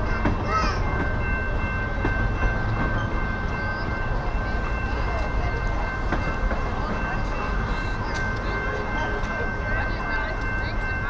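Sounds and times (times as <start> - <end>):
train cars rolling past: 0.0 - 11.0.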